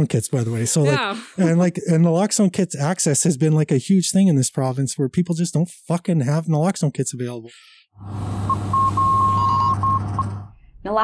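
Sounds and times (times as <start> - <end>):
high-pitched electronic beeping: 8.0 - 10.5.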